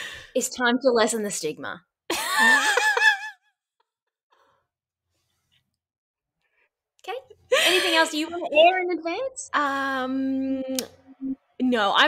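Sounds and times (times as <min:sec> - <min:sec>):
woman laughing: 0:02.1 - 0:03.6, 0:07.5 - 0:08.4.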